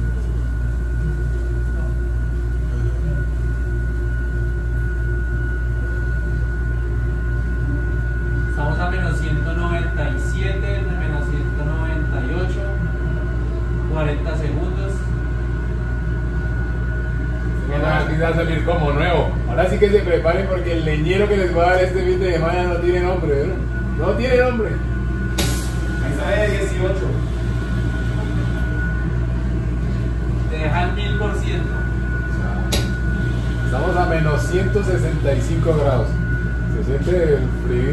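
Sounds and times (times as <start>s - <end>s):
low hum of cryotherapy cabin: 0.0s - 37.9s
thin high tone: 16.7s - 37.9s.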